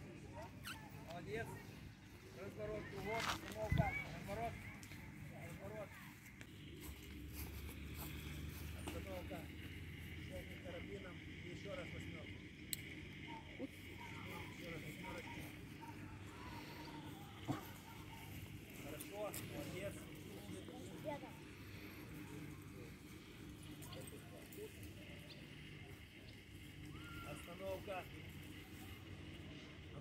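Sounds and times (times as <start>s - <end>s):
faint voices talking: 0.0s - 30.0s
steady low hum: 0.0s - 30.0s.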